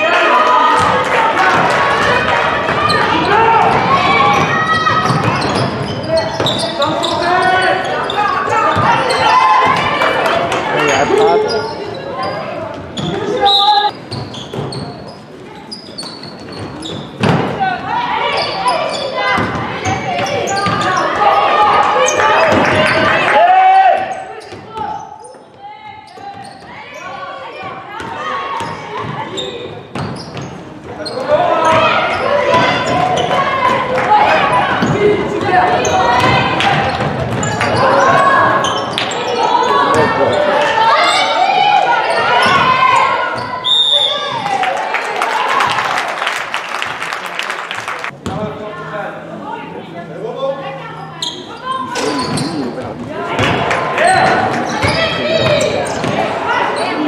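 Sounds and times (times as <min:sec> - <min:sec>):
players and spectators shouting: 0:00.0 - 0:14.0, 0:17.6 - 0:29.7, 0:31.0 - 0:46.7, 0:50.7 - 0:57.0
referee's whistle: 0:13.4 - 0:13.9, 0:43.4 - 0:44.3.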